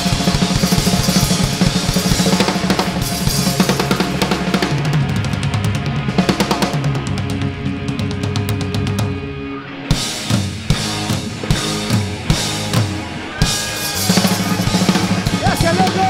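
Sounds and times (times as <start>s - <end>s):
drum kit pounding: 0.0s - 9.3s, 9.9s - 16.0s
electric guitar: 0.0s - 16.0s
live rock band playing: 0.0s - 16.0s.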